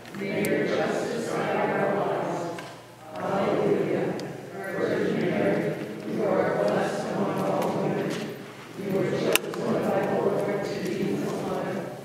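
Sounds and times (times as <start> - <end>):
woman reciting in a reverberant church: 0.0 - 12.0.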